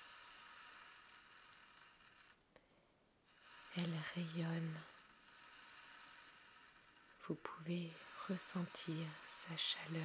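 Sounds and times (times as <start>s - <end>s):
ocean drum beads rolling: 0.0s - 2.4s, 3.3s - 10.0s.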